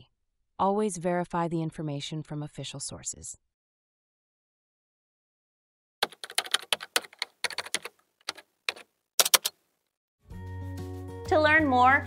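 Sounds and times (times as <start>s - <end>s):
computer keyboard typing: 6.0s - 9.6s.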